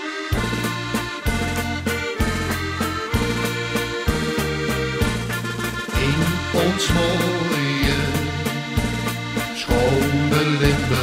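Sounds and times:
instrumental ballad introduction: 0.0s - 11.0s.

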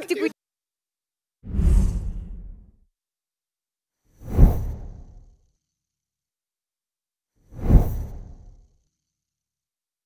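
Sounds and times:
deep whoosh sound effect: 1.4s - 2.7s.

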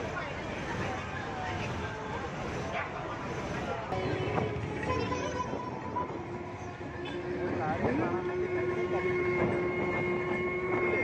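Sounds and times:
crowd voices: 0.0s - 11.0s
street noise: 0.0s - 11.0s
long horn-like tone: 6.9s - 11.0s.

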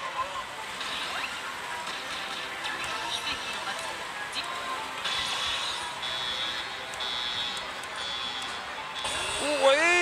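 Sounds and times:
noisy hall background: 0.0s - 10.0s.

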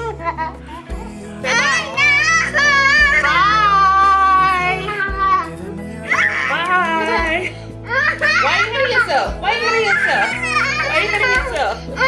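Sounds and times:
boy laughing and squealing: 0.0s - 5.5s, 6.1s - 12.0s
background pop music: 0.0s - 12.0s
woman's voice: 0.9s - 7.6s, 8.3s - 12.0s.

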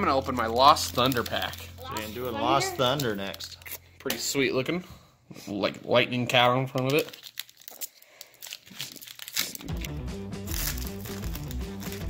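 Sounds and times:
foil wrapper crinkling and tearing: 0.0s - 3.9s, 6.8s - 12.0s
background music with bass line: 9.7s - 12.0s.

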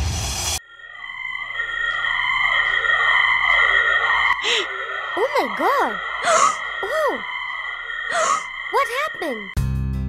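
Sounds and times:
eerie electronic swooping tones: 0.0s - 9.6s.

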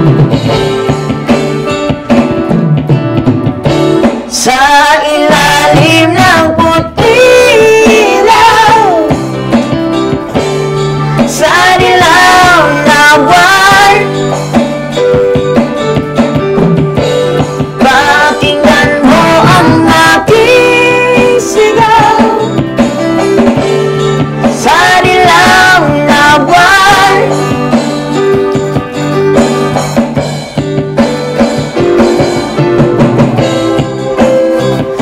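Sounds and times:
accompaniment beat: 0.0s - 35.0s
electronic keyboard chords: 0.0s - 35.0s
man singing into a microphone: 4.3s - 9.2s, 11.4s - 14.1s, 17.8s - 22.5s, 24.6s - 27.4s.

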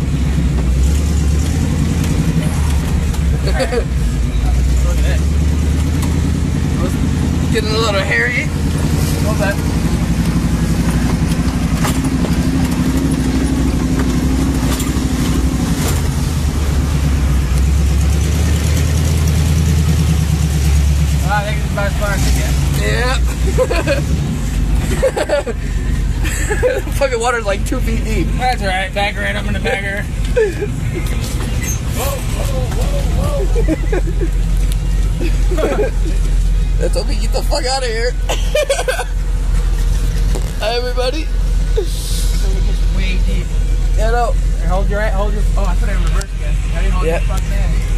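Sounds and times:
engine running under load: 0.0s - 47.9s
people laughing: 3.2s - 4.1s, 23.2s - 27.0s, 29.5s - 36.5s, 38.2s - 39.2s
vehicle driving through water: 11.9s - 39.1s.

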